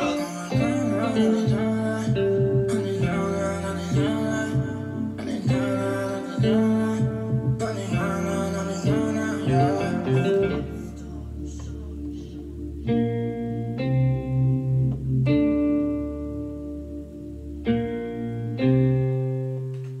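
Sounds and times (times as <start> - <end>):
electronic keyboard chords: 0.0 - 20.0.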